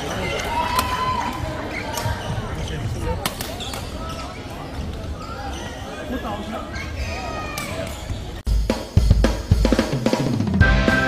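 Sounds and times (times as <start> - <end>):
many voices talking: 0.0 - 8.5.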